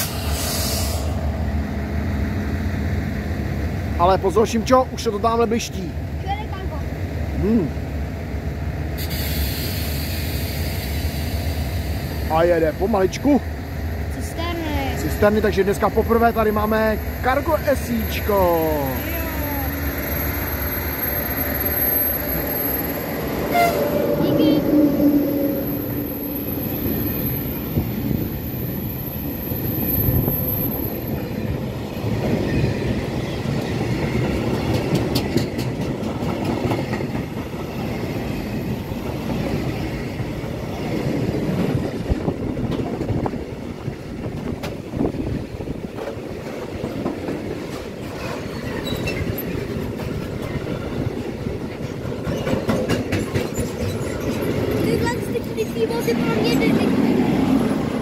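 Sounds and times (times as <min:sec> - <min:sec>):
freight train rolling past: 0:00.0 - 0:58.0
train horn blast: 0:23.4 - 0:26.1
wheels clattering over rail joints: 0:32.0 - 0:38.4, 0:44.2 - 0:57.4.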